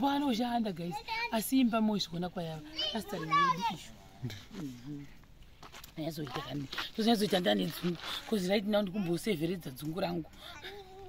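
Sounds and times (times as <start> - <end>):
young children chattering: 2.5 - 4.0
woman talking: 6.0 - 10.3.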